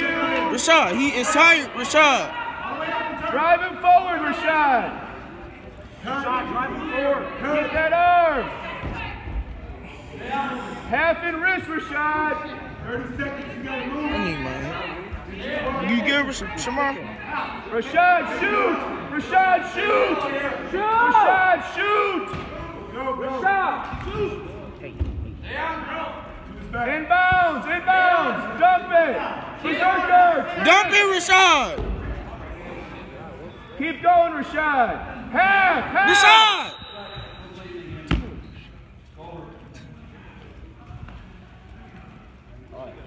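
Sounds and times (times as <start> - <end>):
faint indistinct voices: 0.0 - 43.0
voices shouting in hall: 35.3 - 36.8.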